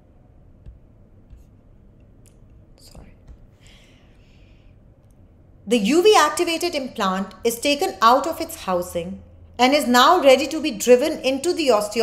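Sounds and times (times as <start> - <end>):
low room hum: 0.0 - 12.0
person breathing close to microphone: 3.5 - 4.8.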